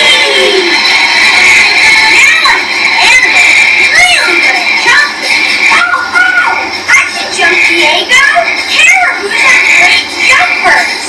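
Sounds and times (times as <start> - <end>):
high-pitched cartoon voices talking: 0.0 - 0.8, 1.4 - 11.0.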